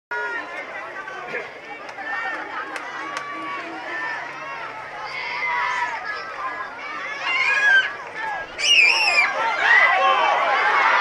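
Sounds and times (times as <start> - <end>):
crowd talking and shouting: 0.1 - 11.0.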